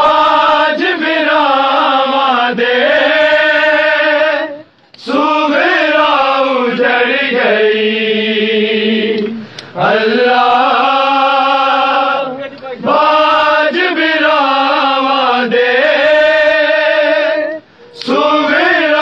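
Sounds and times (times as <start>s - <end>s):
men chanting a lament: 0.0s - 19.0s.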